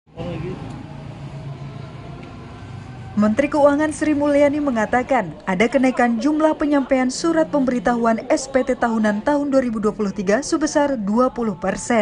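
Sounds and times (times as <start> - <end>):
vehicle engine: 0.1 - 11.0
distant people talking: 0.1 - 12.0.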